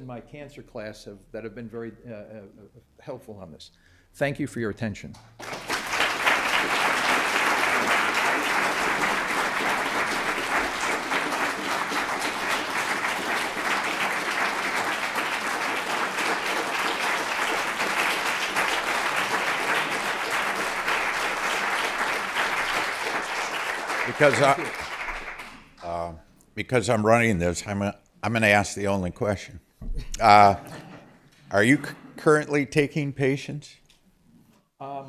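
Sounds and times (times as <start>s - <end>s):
audience applauding: 5.4s - 26.0s.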